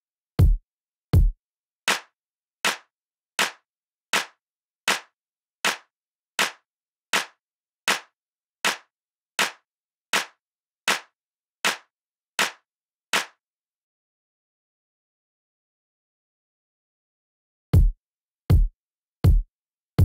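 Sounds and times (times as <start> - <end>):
hand claps on a steady beat: 1.2 - 13.4.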